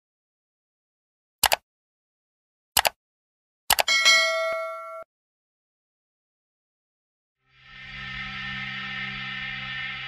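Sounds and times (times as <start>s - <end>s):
mouse clicks: 1.4s - 1.6s, 2.8s - 3.0s
bright chime ding: 3.9s - 5.1s.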